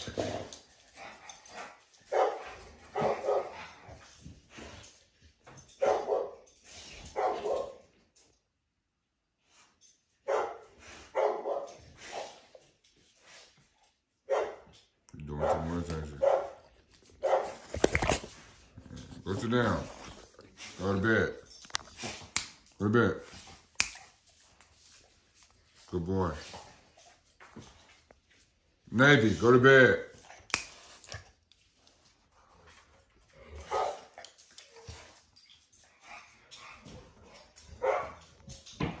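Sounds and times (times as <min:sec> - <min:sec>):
dog barking: 0:02.1 - 0:03.6, 0:05.8 - 0:06.4, 0:07.1 - 0:07.8, 0:10.2 - 0:11.8, 0:14.3 - 0:14.7, 0:15.4 - 0:17.7, 0:33.6 - 0:34.1, 0:37.8 - 0:38.2.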